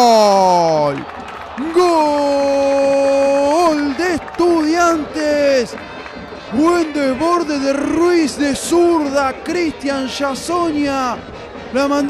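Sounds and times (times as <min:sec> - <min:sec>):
sports commentator shouting: 0:00.0 - 0:01.0, 0:01.6 - 0:05.8, 0:06.5 - 0:12.0.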